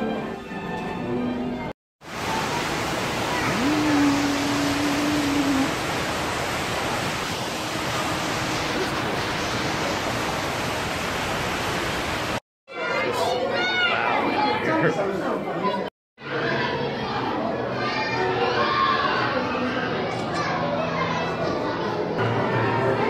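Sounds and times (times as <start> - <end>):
waterfall rushing: 2.0 - 12.4.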